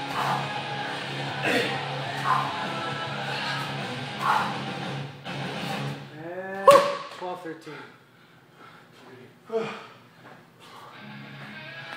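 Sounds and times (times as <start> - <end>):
background music: 0.0 - 6.2, 10.9 - 11.9.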